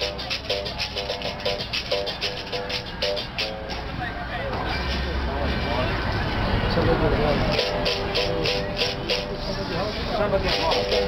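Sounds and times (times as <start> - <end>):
berimbau struck in quick rhythm: 0.0 - 4.0, 7.5 - 9.6, 10.4 - 11.0
caxixi rattle shaking: 10.5 - 11.0.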